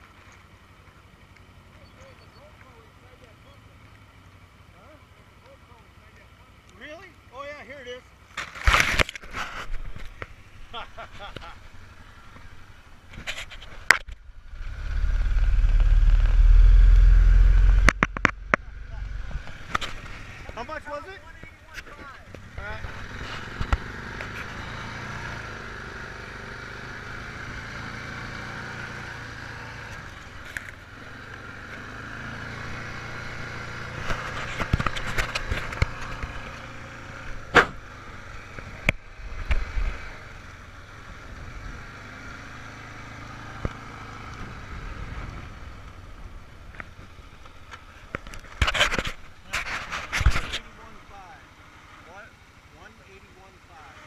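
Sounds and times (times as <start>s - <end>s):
atv engine rumble: 0.0s - 54.0s
muffled rubbing on camera: 8.6s - 10.4s, 13.1s - 13.9s, 34.0s - 36.6s, 48.5s - 50.8s
loud scraping: 13.1s - 20.6s, 48.5s - 50.7s.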